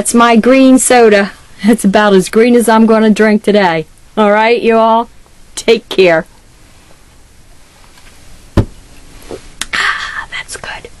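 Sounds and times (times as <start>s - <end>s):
person whispering: 9.8s - 11.0s.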